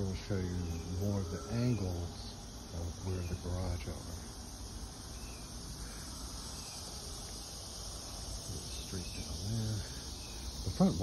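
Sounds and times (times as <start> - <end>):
insects buzzing: 0.0 - 11.0.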